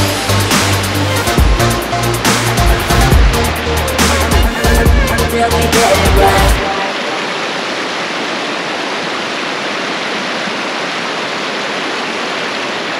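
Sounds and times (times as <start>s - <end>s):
pop song with heavy beat: 0.0s - 7.2s
stream flowing over rocks: 0.0s - 12.9s.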